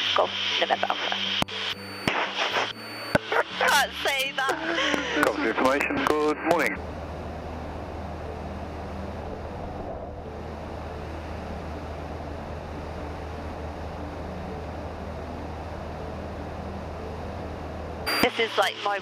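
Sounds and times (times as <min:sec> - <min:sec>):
light aircraft engine droning: 0:03.3 - 0:19.0.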